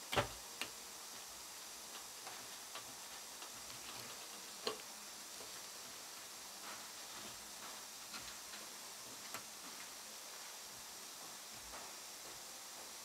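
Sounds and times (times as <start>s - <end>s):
low hiss: 0.0s - 13.0s.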